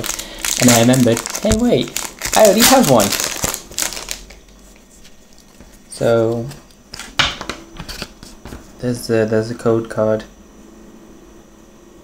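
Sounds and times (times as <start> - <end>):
foil wrapper crinkling: 0.0 - 7.2.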